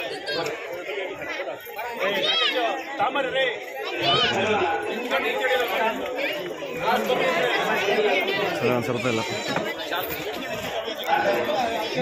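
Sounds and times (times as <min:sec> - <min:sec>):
overlapping chatter: 0:00.0 - 0:12.0.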